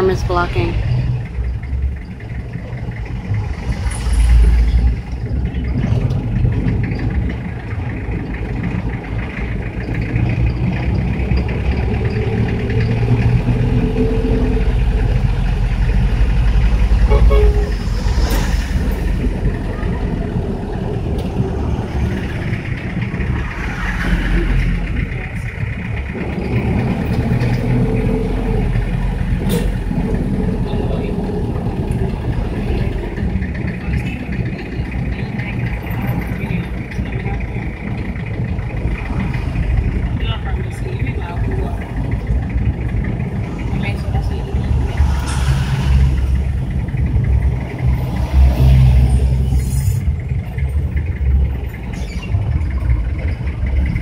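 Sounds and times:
minibus engine and road drone: 0:00.0 - 0:54.0.

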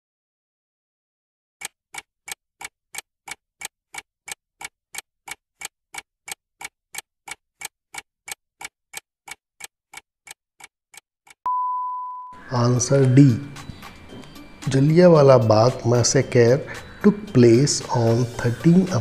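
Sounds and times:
clock ticking: 0:01.6 - 0:11.4, 0:12.6 - 0:19.0.

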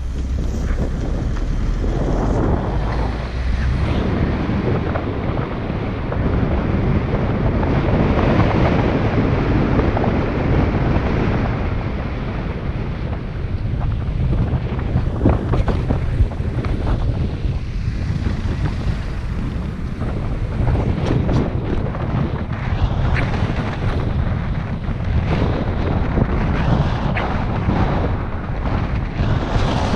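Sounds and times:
wind buffeting microphone: 0:00.0 - 0:29.9.

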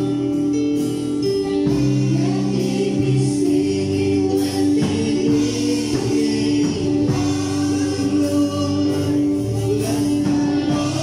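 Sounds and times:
guitar chords: 0:00.0 - 0:11.0
person singing worship music: 0:00.0 - 0:11.0.

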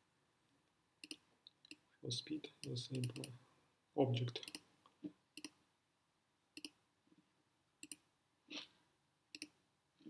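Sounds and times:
computer mouse clicks: 0:01.0 - 0:01.8, 0:04.4 - 0:04.7, 0:05.4 - 0:05.6, 0:06.6 - 0:06.8, 0:07.8 - 0:08.0, 0:09.3 - 0:09.6.

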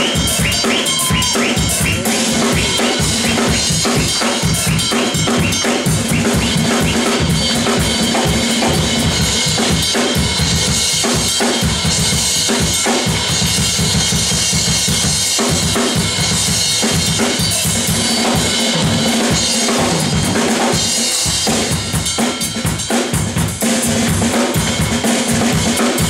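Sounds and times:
bass drum and snare strokes: 0:00.0 - 0:10.3.

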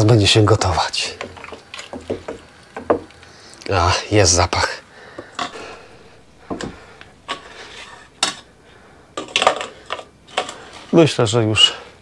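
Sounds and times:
spoon knocking against pot: 0:01.2 - 0:03.1.

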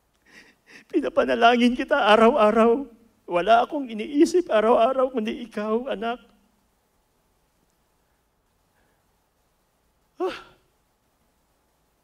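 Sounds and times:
man sighing: 0:10.2 - 0:10.7.

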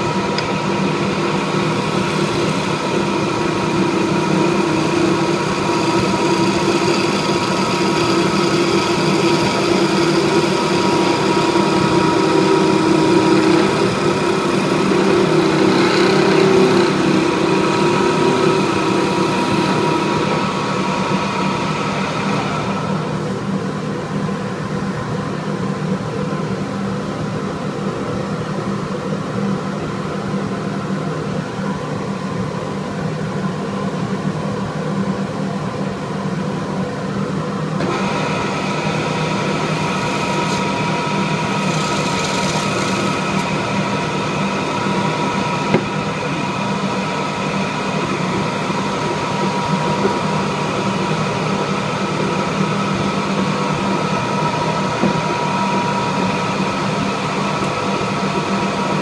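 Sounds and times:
wood lathe motor hum: 0:00.0 - 0:23.4, 0:37.8 - 0:59.0
chisel cutting hiss: 0:01.4 - 0:19.9, 0:39.6 - 0:40.7, 0:41.4 - 0:43.5.

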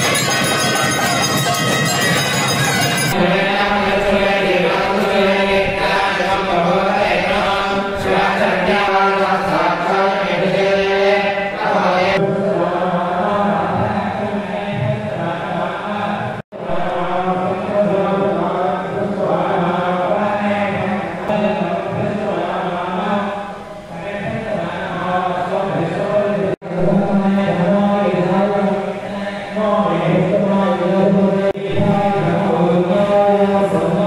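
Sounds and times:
voices chanting mantras: 0:00.0 - 0:34.0.

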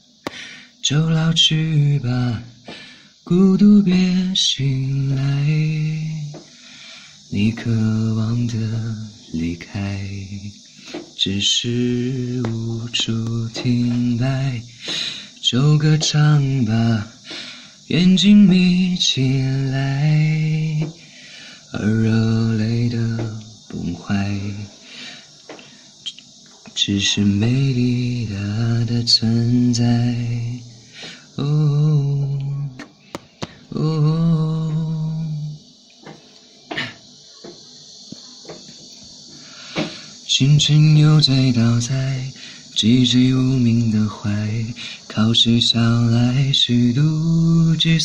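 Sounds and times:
man singing unaccompanied: 0:00.0 - 0:35.8, 0:39.1 - 0:48.0
man breathing in: 0:00.2 - 0:00.8, 0:02.6 - 0:03.2, 0:06.5 - 0:07.3, 0:14.8 - 0:15.4, 0:17.2 - 0:17.8, 0:21.0 - 0:21.7, 0:24.8 - 0:25.9, 0:30.8 - 0:31.4, 0:39.3 - 0:40.2, 0:42.4 - 0:42.8, 0:44.8 - 0:45.1.

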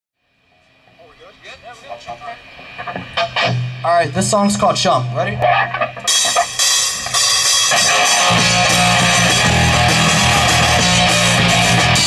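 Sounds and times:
people talking: 0:01.0 - 0:02.4, 0:03.8 - 0:05.6.

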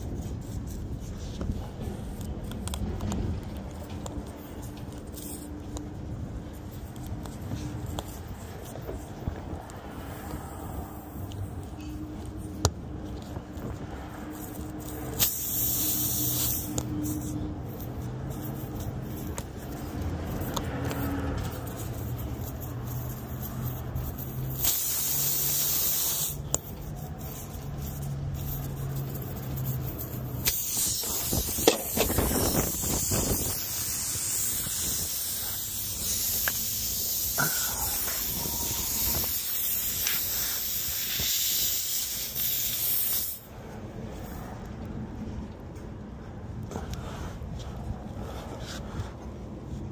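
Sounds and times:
tool clicks and scrapes: 0:00.0 - 0:10.5, 0:11.2 - 0:41.2
air hissing from tyre: 0:00.0 - 0:44.5.

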